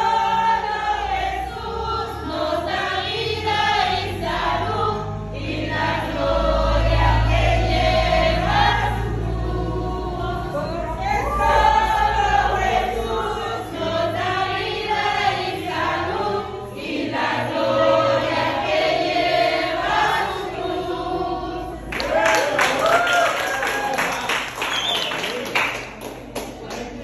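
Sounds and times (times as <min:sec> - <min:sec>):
women and children singing: 0:00.0 - 0:22.2
people clapping: 0:21.9 - 0:27.0.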